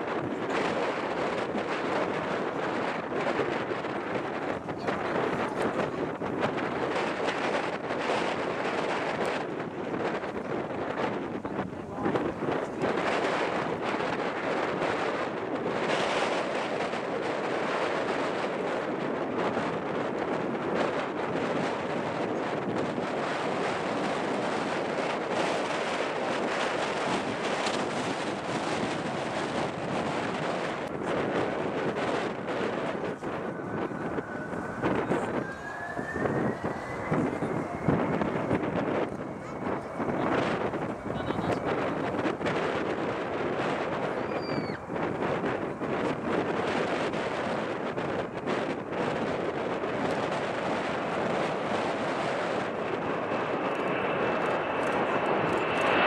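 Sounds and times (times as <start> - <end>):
jet engines rushing: 0.0 - 56.0
wind buffeting microphone: 0.0 - 56.0
faint rising whine: 30.7 - 47.8.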